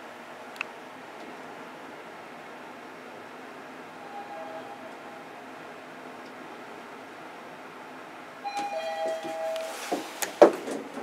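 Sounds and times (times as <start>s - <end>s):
elevator hum: 0.0s - 11.0s
two-tone elevator chime: 4.0s - 5.3s, 8.4s - 9.8s.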